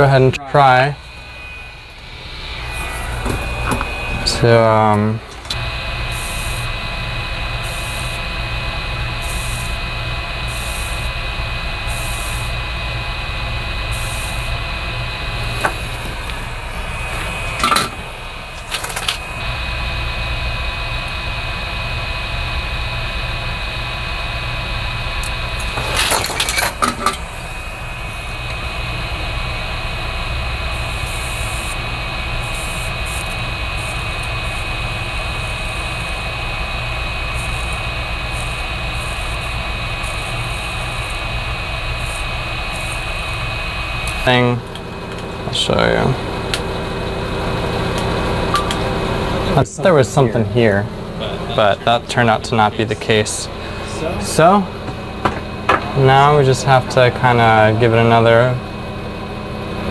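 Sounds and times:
soldering equipment whirring: 0.0s - 59.9s.

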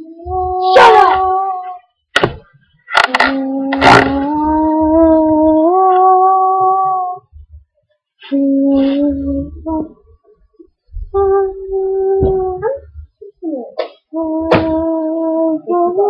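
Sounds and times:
girl singing long wailing notes: 0.0s - 1.9s, 3.1s - 7.4s, 8.2s - 10.2s, 11.0s - 16.0s.

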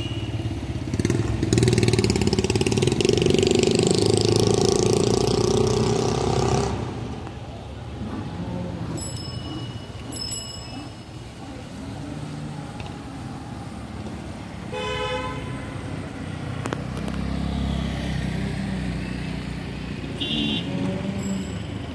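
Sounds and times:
vehicle horn honk: 0.0s - 0.5s, 14.7s - 16.0s, 20.2s - 21.5s
street traffic noise: 0.0s - 21.9s
low engine rumble: 6.6s - 21.9s.

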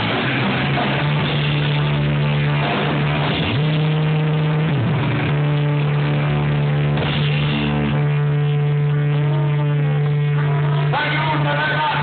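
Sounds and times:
distorted electric guitars and bass: 0.0s - 12.0s.

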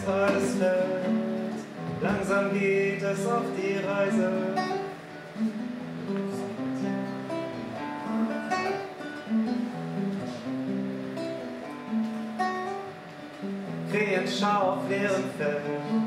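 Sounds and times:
classical guitar strumming: 0.0s - 16.0s.

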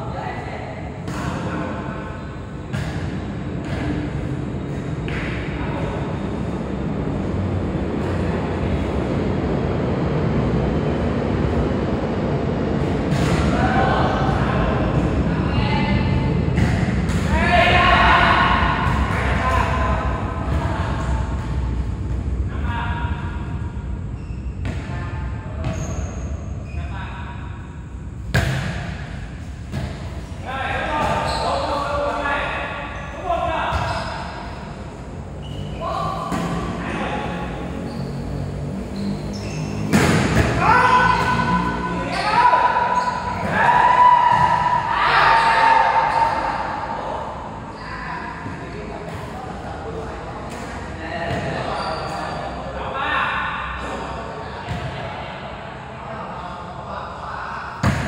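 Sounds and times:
volleyball being hit: 28.3s - 29.1s, 39.8s - 40.6s
players shouting: 40.2s - 47.0s.

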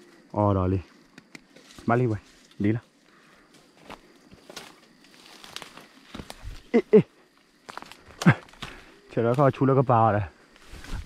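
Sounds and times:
twigs crackling underfoot: 1.0s - 11.0s
footsteps through dry grass: 1.6s - 6.7s, 7.5s - 9.6s, 10.4s - 11.0s.

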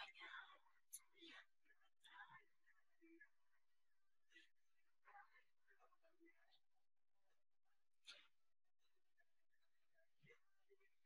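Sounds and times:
woman whispering: 0.0s - 6.7s.

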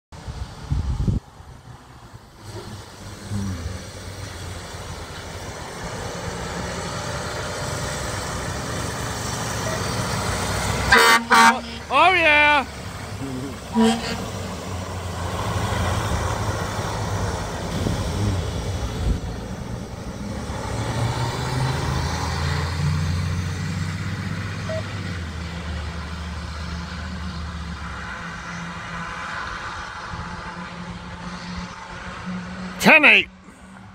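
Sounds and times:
truck diesel engine driving off: 0.2s - 32.7s.

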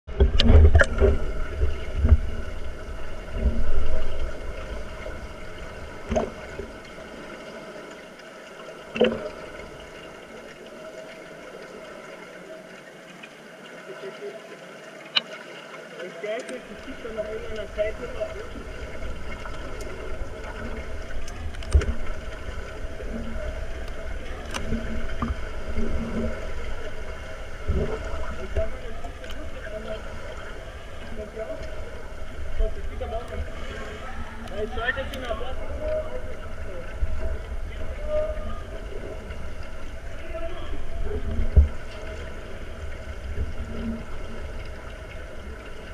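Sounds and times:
sharp underwater clicks and knocks: 0.1s - 2.7s, 3.3s - 7.0s, 8.9s - 9.6s, 15.1s - 15.5s, 18.3s - 27.0s
faint steady hum: 0.1s - 45.9s
underwater rumble and bubbles: 0.1s - 45.9s.

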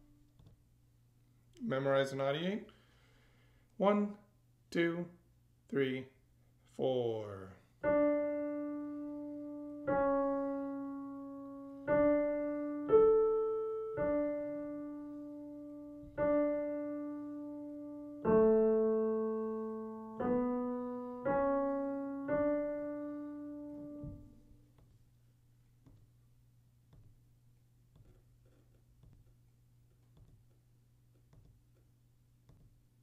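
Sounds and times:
slow piano melody: 7.8s - 24.9s.

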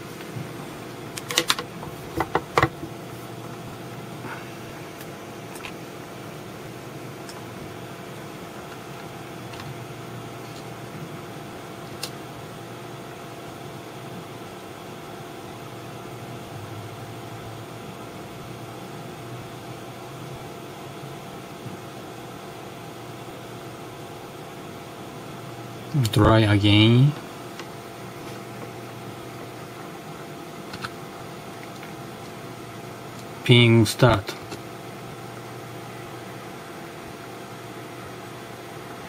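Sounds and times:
room hum and hiss: 0.0s - 39.0s.

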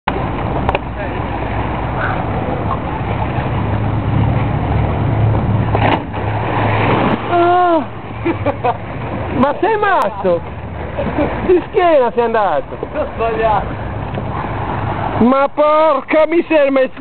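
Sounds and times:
splash into water: 5.6s - 8.0s.

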